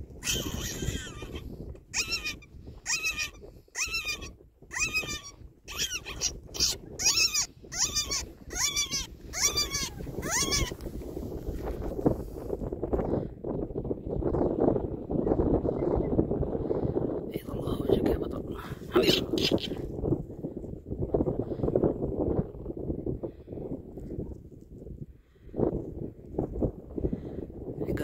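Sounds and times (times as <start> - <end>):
shrill animal cries: 0.2 - 10.8.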